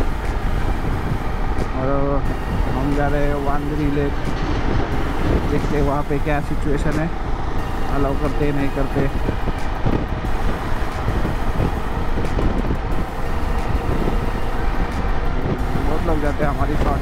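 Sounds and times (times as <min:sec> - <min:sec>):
motorcycle engine and tyre noise: 0:00.0 - 0:17.0
wind buffeting on microphone: 0:00.0 - 0:17.0.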